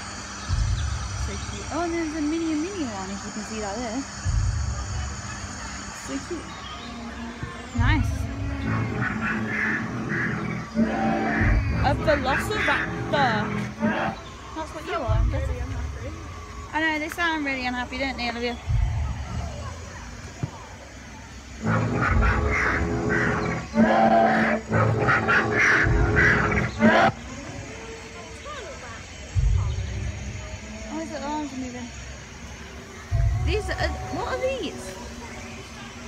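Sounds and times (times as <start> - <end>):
deep rumbling surge: 0.0 - 20.3, 21.0 - 36.0
dinosaur roars from loudspeakers: 8.3 - 12.2, 21.6 - 27.4.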